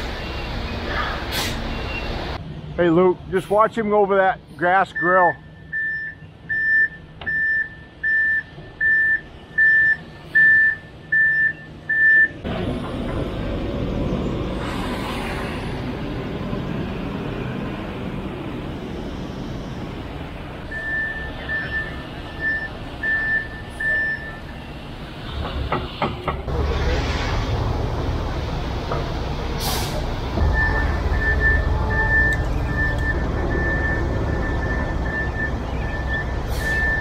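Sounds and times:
truck backup alarm beeping: 0:04.9 - 0:12.4, 0:20.6 - 0:24.9, 0:30.4 - 0:37.0.

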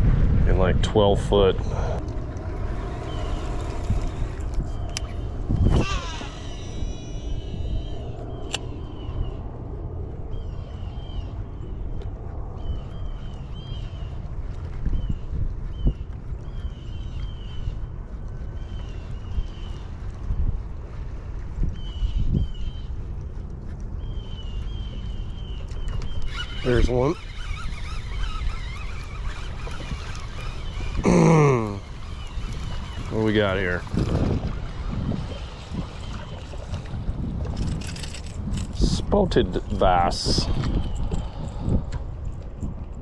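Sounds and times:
wind rumble on microphone: 0:00.0 - 0:43.0
fishing reel whirring: 0:02.0 - 0:11.3, 0:25.6 - 0:38.7.

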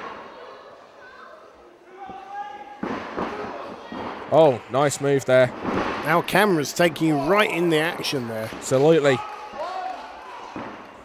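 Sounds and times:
crowd noise in large hall: 0:00.0 - 0:11.0.

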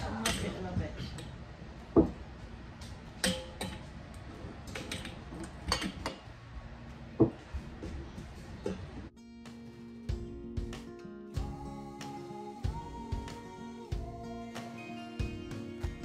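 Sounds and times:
background guitar music: 0:09.1 - 0:16.0.

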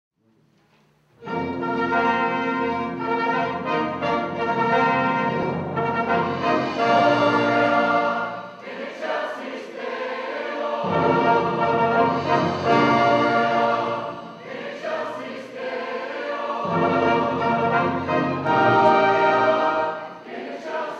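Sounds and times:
orchestral strings and horn: 0:01.2 - 0:08.8, 0:10.0 - 0:20.9
mixed choir singing: 0:01.2 - 0:20.9.

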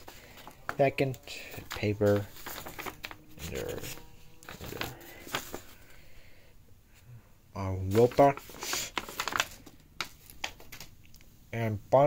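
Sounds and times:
paper rustling: 0:00.0 - 0:06.0, 0:07.8 - 0:11.0.

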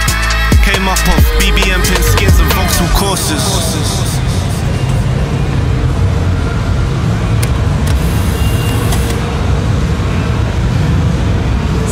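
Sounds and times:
road traffic rumble: 0:00.0 - 0:11.9.

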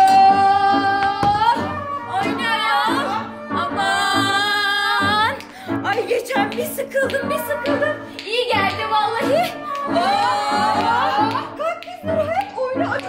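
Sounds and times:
women singing long sliding notes: 0:00.0 - 0:05.4, 0:06.2 - 0:13.0.

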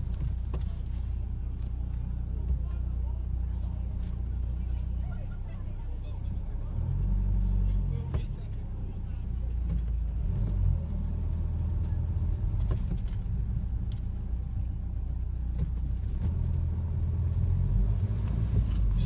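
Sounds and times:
car engine: 0:00.0 - 0:19.0
road rumble: 0:00.0 - 0:19.0.

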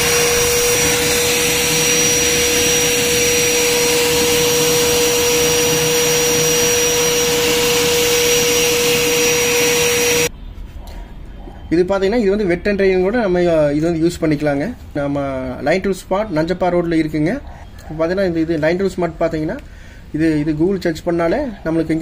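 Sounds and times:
rushing air: 0:00.0 - 0:10.3
vacuum motor whining: 0:00.0 - 0:10.3.

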